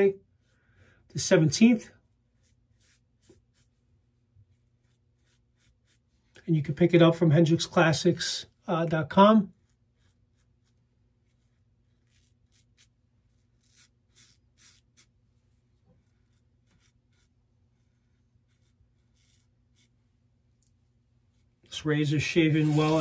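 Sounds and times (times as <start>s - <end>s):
razor scraping beard stubble: 2.3s - 3.8s, 4.4s - 6.4s, 9.5s - 15.2s, 15.8s - 20.0s, 22.3s - 23.0s.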